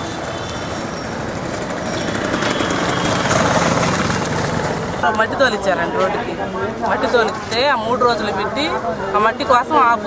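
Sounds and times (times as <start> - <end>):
motor vehicles running: 0.0 - 8.8.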